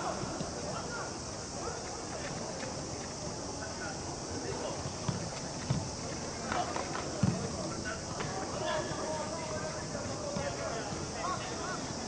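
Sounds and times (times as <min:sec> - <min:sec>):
ball kick thumps: 0:04.8 - 0:06.0, 0:07.2 - 0:07.5.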